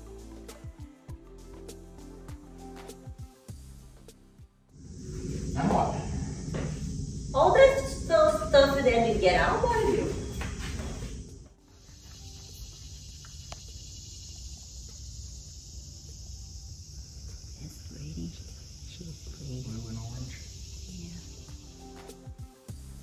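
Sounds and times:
insects hissing: 0:04.7 - 0:23.0
faint low sounds: 0:04.8 - 0:11.5.

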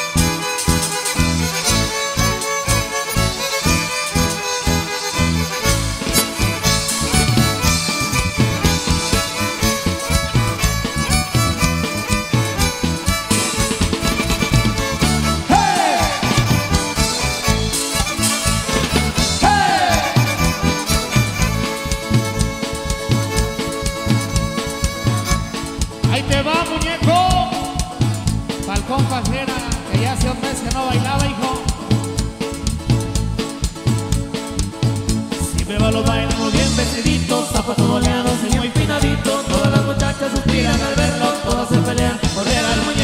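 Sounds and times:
violins playing melody: 0:00.0 - 0:26.1
band playing instrumental: 0:00.0 - 0:43.0
steady bass beat: 0:00.2 - 0:43.0.

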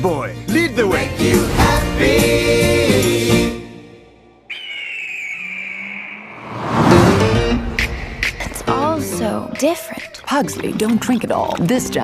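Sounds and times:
car whooshing past: 0:06.3 - 0:08.7.

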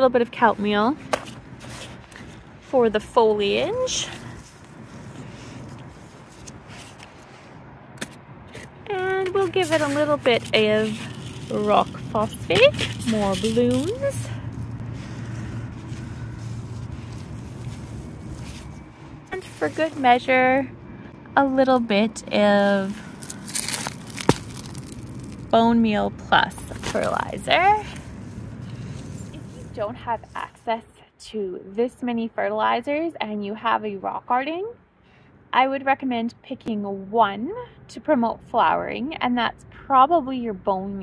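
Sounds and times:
low steady hum: 0:00.0 - 0:41.0
gloved hand rustling in plants: 0:01.2 - 0:07.6, 0:08.5 - 0:20.7, 0:22.4 - 0:30.5.

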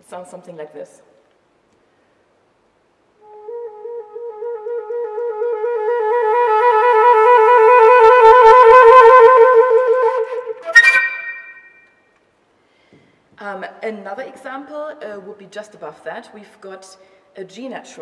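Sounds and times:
flute trill: 0:03.2 - 0:12.0
sharp high flute note: 0:09.4 - 0:12.1.

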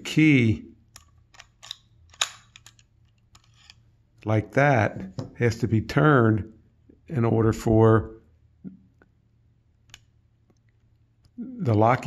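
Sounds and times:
key turning in lock: 0:00.9 - 0:03.8.

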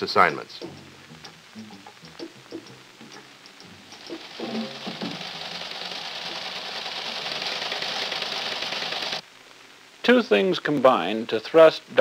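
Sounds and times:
teletypewriter printing clatter: 0:04.0 - 0:09.2.

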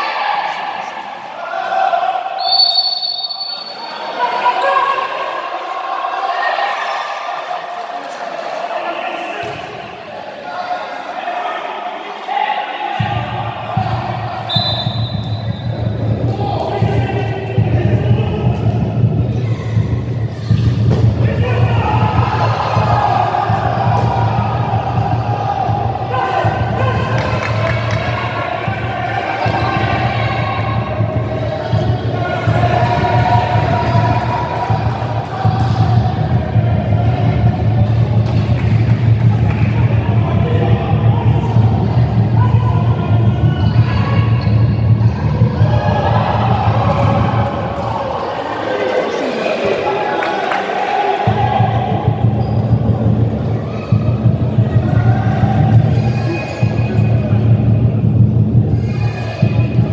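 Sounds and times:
spectators singing and chanting: 0:13.0 - 0:59.9.

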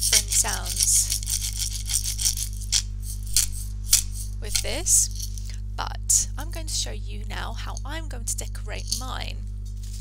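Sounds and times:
beans rattling in glass jar: 0:00.0 - 0:02.8.

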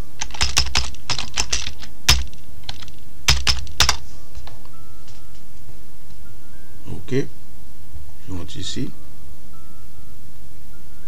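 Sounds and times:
computer keyboard typing: 0:00.0 - 0:04.0.

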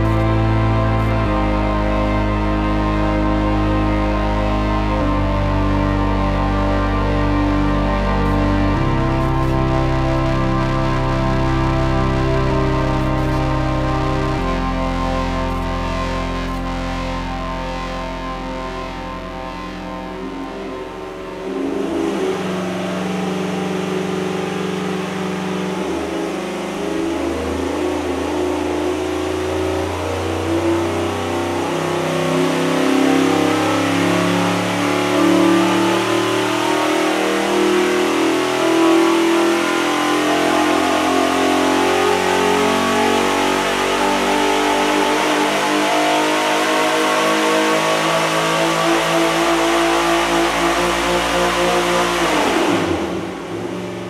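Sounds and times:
engine revving at full throttle: 0:00.0 - 0:54.0.

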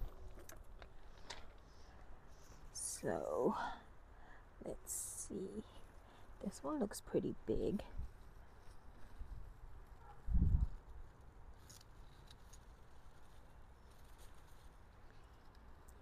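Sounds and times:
leaves and soil rustling: 0:00.0 - 0:04.0, 0:04.6 - 0:16.0.

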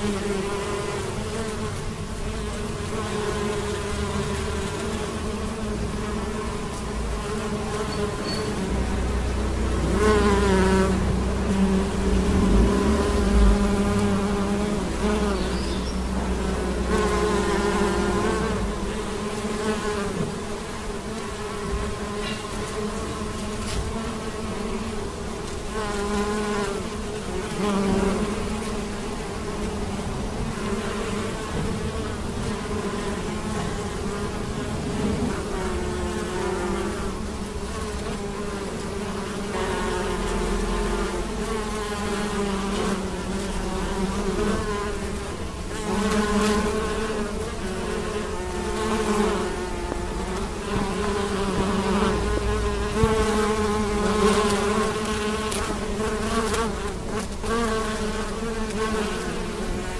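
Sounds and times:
bees buzzing: 0:00.0 - 0:59.9.

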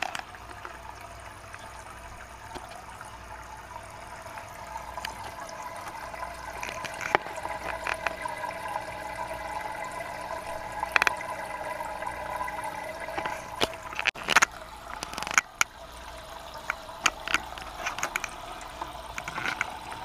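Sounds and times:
water trickling into fish tank: 0:00.0 - 0:20.0.

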